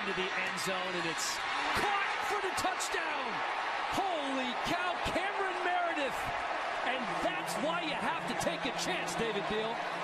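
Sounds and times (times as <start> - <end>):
men commentating: 0.0 - 10.0
stadium crowd noise: 0.0 - 10.0.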